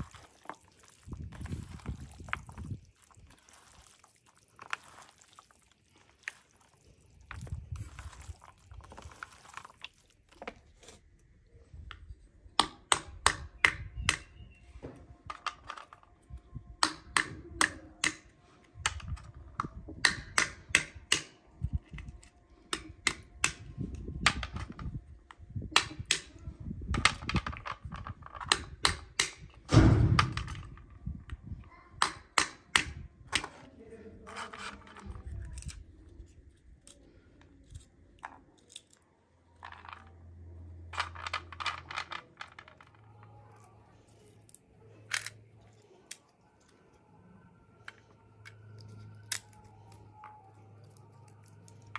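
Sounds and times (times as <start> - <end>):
stone cracking walnut shells: 12.6 - 14.6, 15.2 - 30.9, 32.0 - 33.7, 34.3 - 40.1
heavy thump: 29.7 - 30.5.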